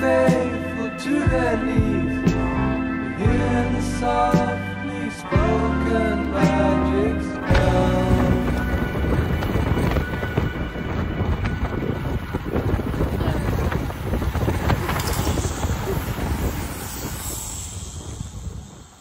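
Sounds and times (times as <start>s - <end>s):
road and tyre rumble: 7.4s - 19.0s
wind buffeting microphone: 7.5s - 19.0s.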